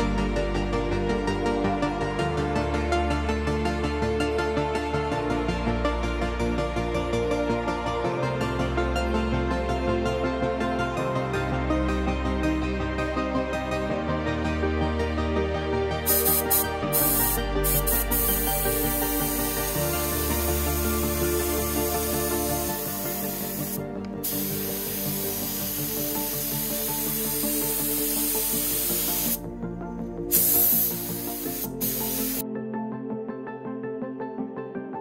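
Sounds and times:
background music: 0.0s - 35.0s
air spray gun hissing: 16.1s - 29.4s, 30.3s - 32.4s.

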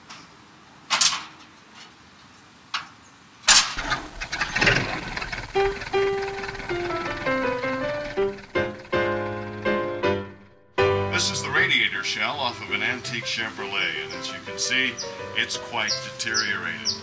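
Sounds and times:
plucked-string music: 3.8s - 11.1s.

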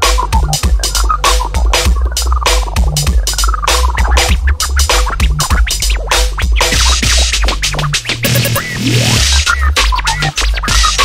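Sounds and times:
breakbeat drums: 0.0s - 11.0s
vinyl scratches: 0.0s - 11.0s.

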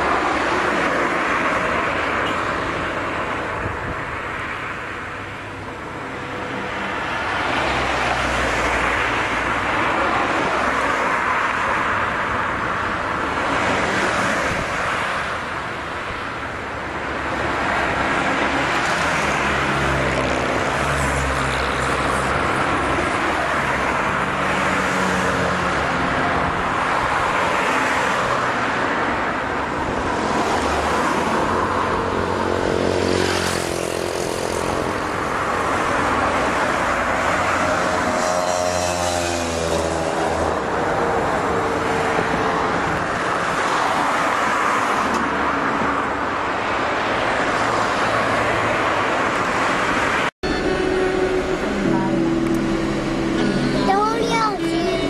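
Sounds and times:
road noise: 0.0s - 55.0s.

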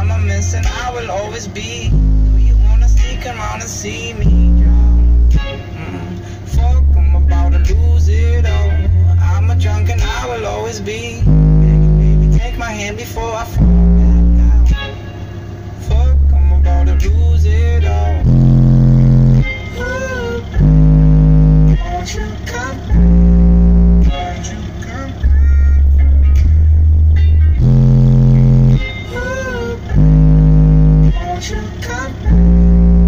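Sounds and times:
deep bass notes from subwoofers: 0.0s - 33.0s
sung vocal line: 0.0s - 33.0s.

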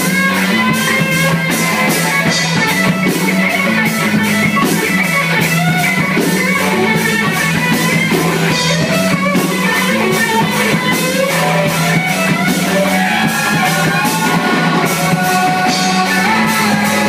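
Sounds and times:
drum kit beat: 0.0s - 17.0s
electric guitar: 0.0s - 17.0s.

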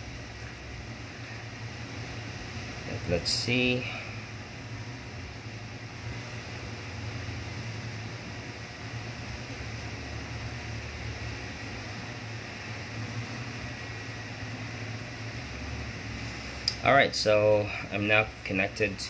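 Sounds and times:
room noise hum and hiss: 0.0s - 19.0s.

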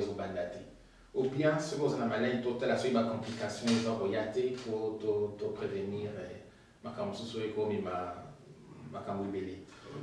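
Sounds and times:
man speaking: 0.0s - 10.0s.

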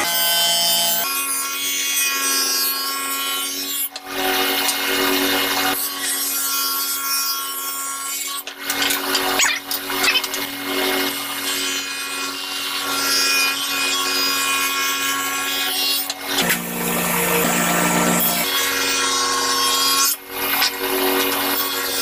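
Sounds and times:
table saw ripping wood: 0.0s - 22.0s.

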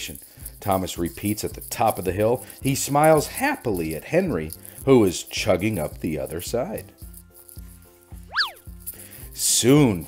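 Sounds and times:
soft plucked background music: 0.0s - 10.0s
whistle sound effect sweeping: 8.3s - 8.7s.

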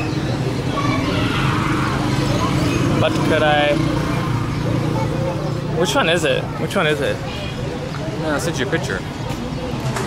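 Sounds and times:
faint voices: 0.0s - 10.0s
traffic rumble: 0.0s - 10.0s.

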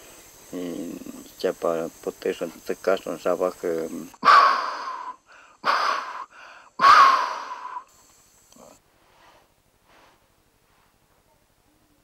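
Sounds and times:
hissing rushes of breath: 4.2s - 8.1s.

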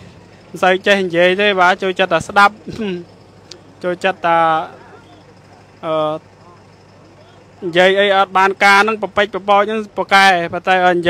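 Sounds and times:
low vehicle hum: 0.0s - 11.0s.

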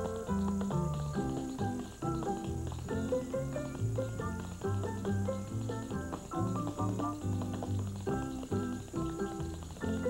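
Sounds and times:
dance-band music: 0.0s - 10.0s
tap shoes on stage floor: 0.0s - 10.0s.

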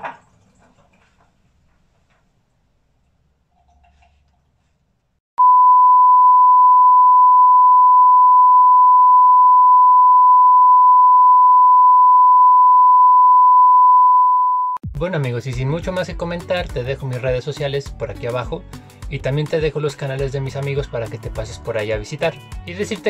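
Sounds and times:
censor bleep tone: 5.4s - 14.8s.

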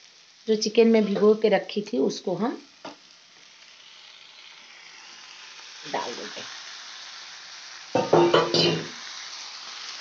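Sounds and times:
oil sizzling in frying pan: 0.0s - 10.0s.

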